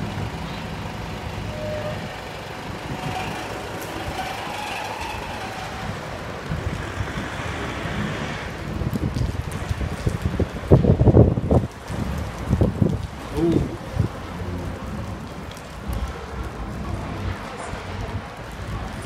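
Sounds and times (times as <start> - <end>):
truck passing rumble: 0.0 - 19.0
wind buffeting microphone: 0.0 - 19.0.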